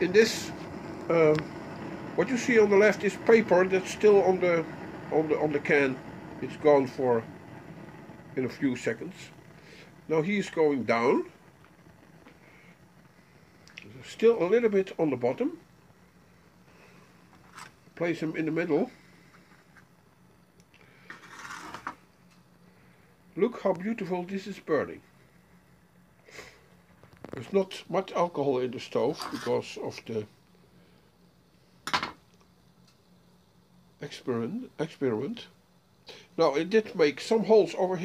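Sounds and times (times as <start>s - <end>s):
faint steady hum: 0.0s - 38.0s
screwdriver scraping on worktop: 21.1s - 22.0s, 29.2s - 29.6s.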